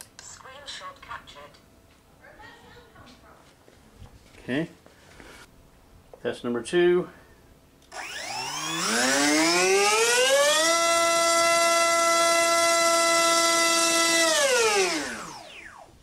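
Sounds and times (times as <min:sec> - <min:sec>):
electric motor propeller whine: 0:07.9 - 0:16.0.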